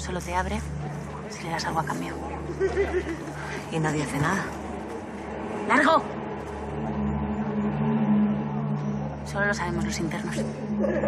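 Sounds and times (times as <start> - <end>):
low dramatic score drone: 0.0 - 11.0.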